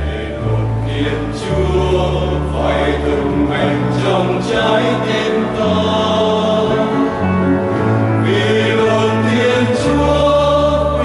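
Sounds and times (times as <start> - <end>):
mixed choir singing a hymn: 0.0 - 11.0.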